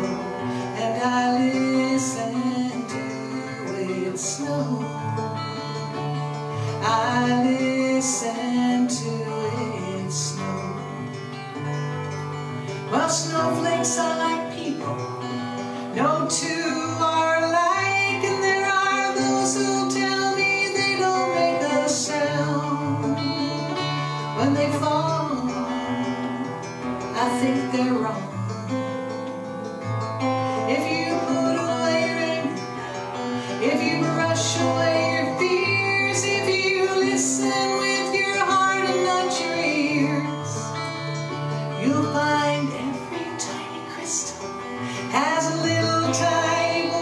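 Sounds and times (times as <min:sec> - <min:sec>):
acoustic guitar strummed and picked: 0:00.0 - 0:47.0
woman singing folk song: 0:00.0 - 0:47.0.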